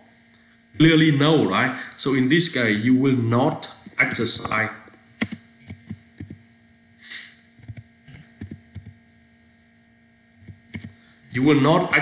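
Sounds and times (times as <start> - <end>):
low electrical hum: 0.0 - 12.0
keyboard key clicks: 5.2 - 6.4.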